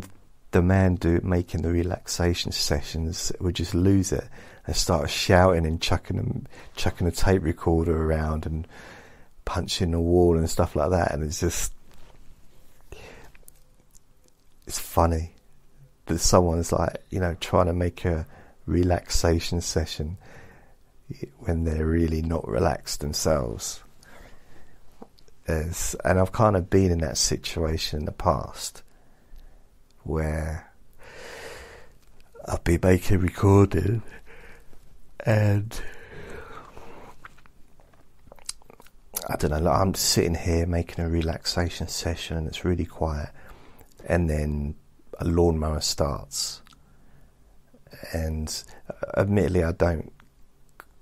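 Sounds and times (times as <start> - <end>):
man talking: 0.0 - 8.7, 9.4 - 11.8, 14.6 - 15.4, 16.0 - 20.3, 21.1 - 24.2, 25.4 - 28.9, 30.0 - 30.8, 32.2 - 34.6, 35.2 - 36.7, 38.4 - 46.8, 47.8 - 50.2
person speaking: 0.0 - 8.8, 9.4 - 20.4, 21.0 - 28.9, 29.9 - 46.8, 47.8 - 51.0
man breathing softly: 4.3 - 4.7, 8.7 - 9.4, 12.5 - 13.4, 18.3 - 18.6, 20.2 - 20.9, 24.0 - 24.9, 31.0 - 32.0, 34.2 - 34.8, 35.8 - 37.2, 43.4 - 43.9
mouth clicks: 38.2 - 39.3, 50.2 - 51.0.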